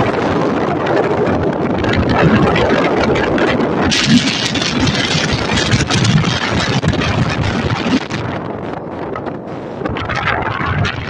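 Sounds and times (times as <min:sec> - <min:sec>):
wind rushing on microphone: 0:00.0 - 0:11.0.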